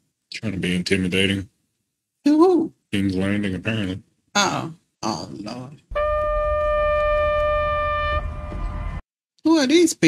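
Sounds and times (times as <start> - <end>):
horn blast: 5.9 - 9.0
low rumble: 5.9 - 9.0.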